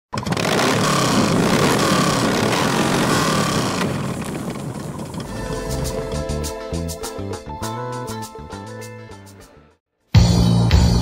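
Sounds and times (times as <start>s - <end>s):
loud motorcycle engine: 0.1s - 7.0s
guitar-led music: 5.2s - 11.0s.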